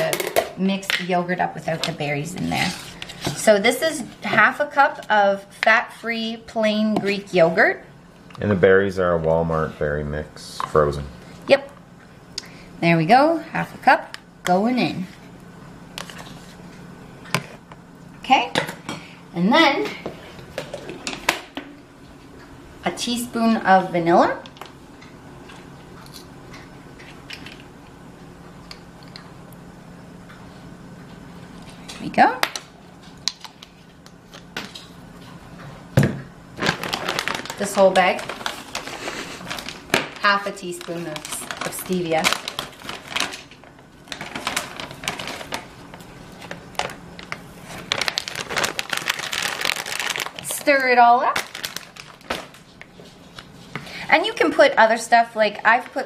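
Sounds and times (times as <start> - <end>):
faint steady hum: 0.0 - 56.0
plastic bag crinkling: 36.6 - 52.9.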